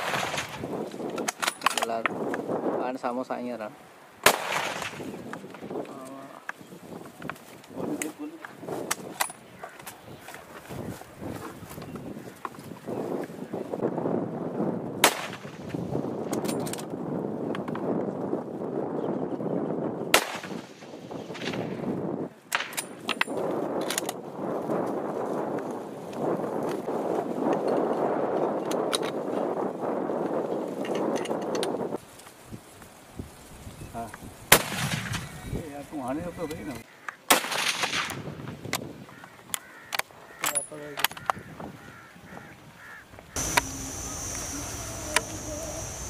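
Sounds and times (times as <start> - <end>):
loud gunshots: 4.2 - 5.0.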